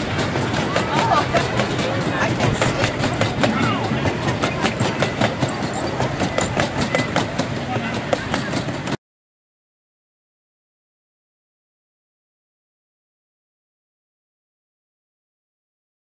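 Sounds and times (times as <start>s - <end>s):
passengers' voices: 0.0s - 9.0s
train wheels clicking over rail joints: 0.0s - 9.0s.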